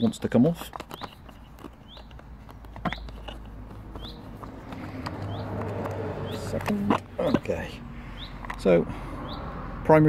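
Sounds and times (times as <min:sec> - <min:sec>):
small bird chirping: 0:00.0 - 0:09.5
faint clicks and rustles: 0:00.2 - 0:07.5.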